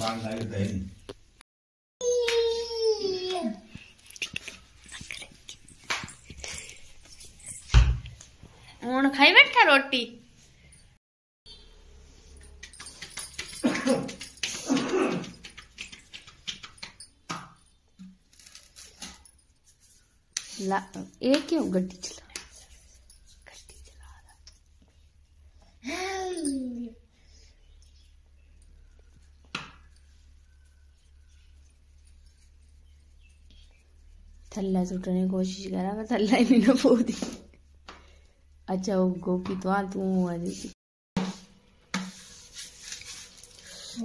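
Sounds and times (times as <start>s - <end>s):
child's held vocal sound: 2.0s - 3.7s.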